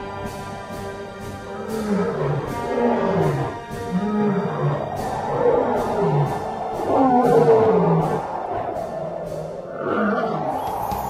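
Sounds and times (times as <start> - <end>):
dramatic music with ticking beat: 0.0 - 11.0
lion roaring: 1.5 - 11.0.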